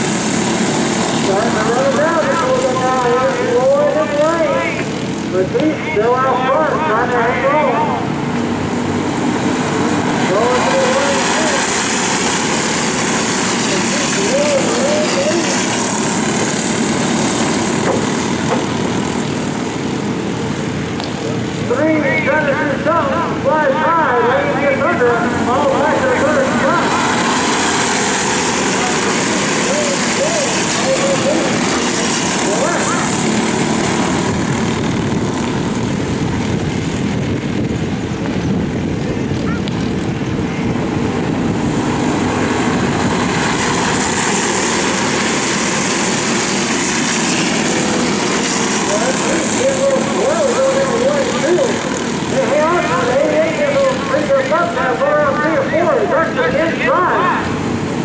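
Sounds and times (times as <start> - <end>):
racing kart engines revving: 0.0 - 58.0.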